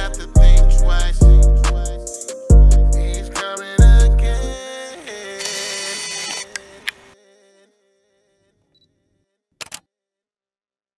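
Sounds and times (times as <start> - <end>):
sharp clicks: 9.6 - 9.8.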